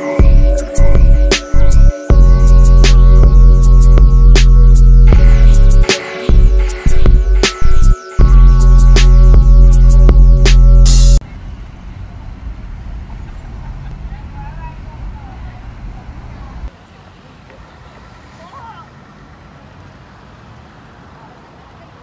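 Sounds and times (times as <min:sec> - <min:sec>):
loud music: 0:00.0 - 0:11.2
low traffic rumble: 0:00.2 - 0:22.0
faint voices of passers-by: 0:11.2 - 0:22.0.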